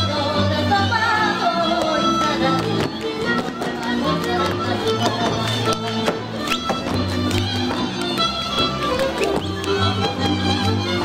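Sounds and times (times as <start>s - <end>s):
folk dance music on strings: 0.0s - 11.0s
boots tapping on stage: 1.6s - 11.0s.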